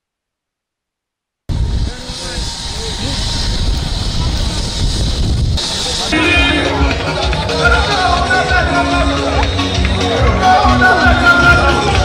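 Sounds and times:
helicopter landing: 0:01.5 - 0:08.5
voices calling out: 0:05.6 - 0:12.0.

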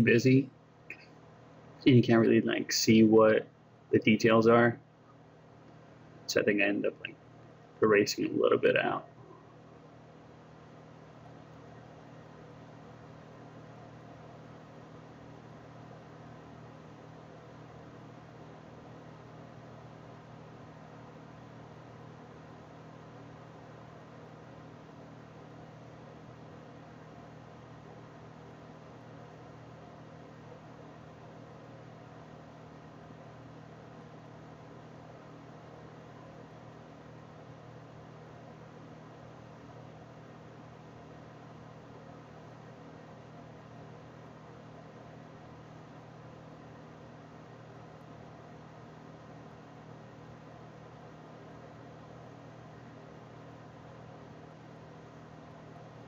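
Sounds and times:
low hum with faint hiss: 0:00.0 - 0:56.0.

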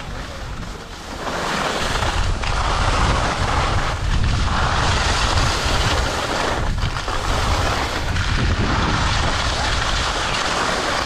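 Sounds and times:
skis scraping over snow: 0:00.0 - 0:11.0
wind buffeting microphone: 0:01.8 - 0:11.0.

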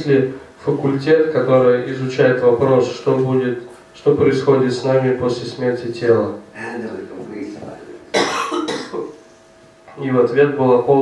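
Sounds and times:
man coughing: 0:08.1 - 0:09.1
man clearing throat: 0:08.1 - 0:09.2.

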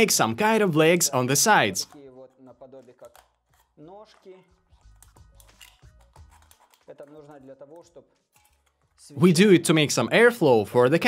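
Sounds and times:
scissors cutting a metal can: 0:01.8 - 0:08.9.

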